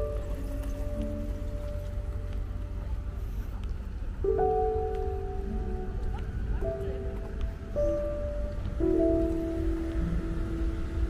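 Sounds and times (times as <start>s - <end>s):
low steady rumble: 0.0s - 11.0s
slow piano music: 0.0s - 11.0s.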